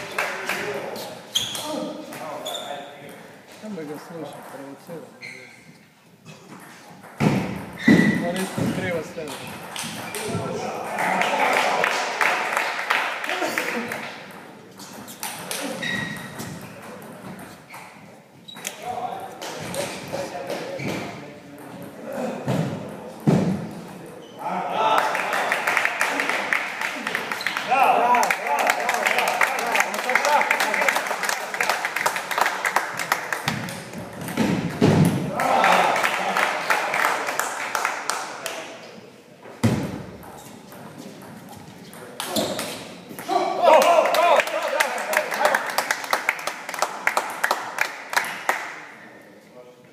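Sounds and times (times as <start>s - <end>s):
people talking: 8.1s - 9.5s, 10.1s - 11.8s, 18.7s - 25.6s
loud thud: 34.4s - 35.3s.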